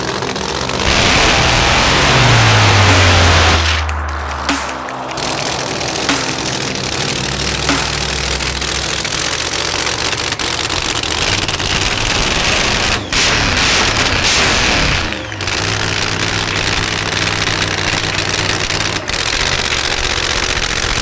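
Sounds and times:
car engine idling and revving: 0:00.0 - 0:21.0.

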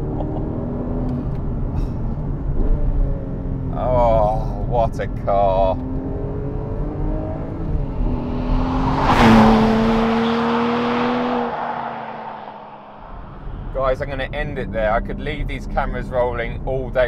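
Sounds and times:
car engine pulling: 0:00.0 - 0:17.0
car passing close by: 0:06.9 - 0:13.8.

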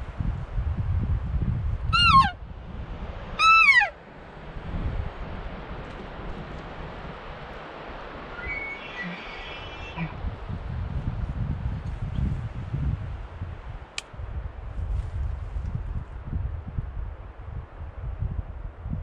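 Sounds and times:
wind on microphone: 0:00.0 - 0:19.0
elk mews: 0:02.0 - 0:02.3, 0:03.4 - 0:03.9, 0:08.3 - 0:10.2
faint high chirps: 0:08.4 - 0:10.1.

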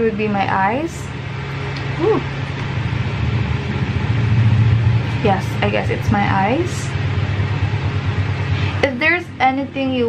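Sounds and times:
electric fan running: 0:00.0 - 0:10.0.

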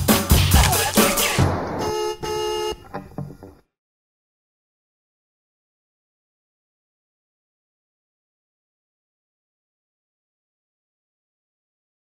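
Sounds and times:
car horn toots: 0:01.6 - 0:03.0.

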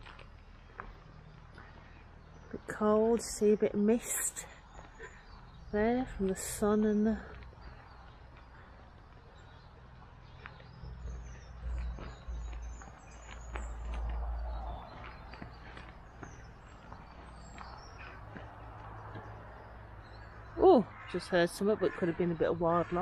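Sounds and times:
distant birds chirping: 0:00.0 - 0:23.0.

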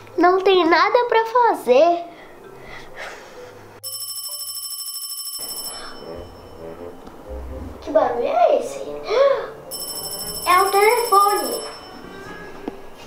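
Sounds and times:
telephone ringing: 0:03.8 - 0:06.6, 0:09.7 - 0:13.0.

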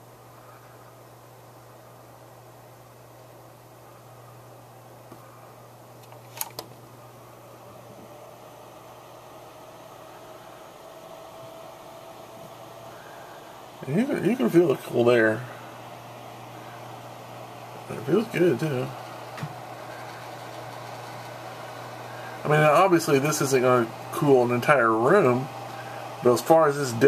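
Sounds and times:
desk fan whirring: 0:00.0 - 0:27.0.

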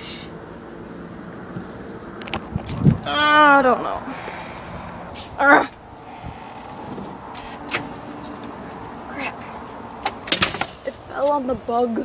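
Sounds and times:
handling rustle and hiss: 0:04.9 - 0:05.4.

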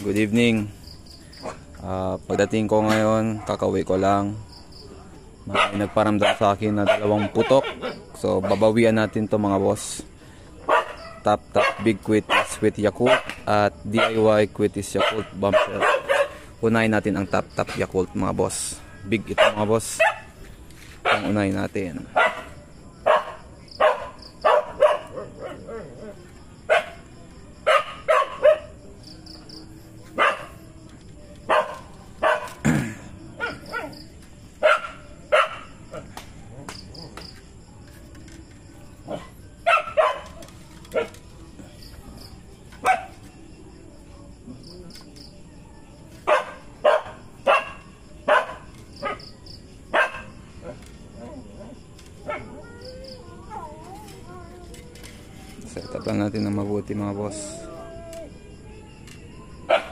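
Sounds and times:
dog barking: 0:03.3 - 0:03.7, 0:05.5 - 0:09.3, 0:10.6 - 0:16.4, 0:19.3 - 0:20.4, 0:21.0 - 0:21.4, 0:22.1 - 0:28.8, 0:30.1 - 0:30.6, 0:31.5 - 0:32.6, 0:33.4 - 0:34.0, 0:34.6 - 0:36.1, 0:39.0 - 0:41.1, 0:42.8 - 0:43.2, 0:46.2 - 0:52.7, 0:59.7 - 0:59.9.

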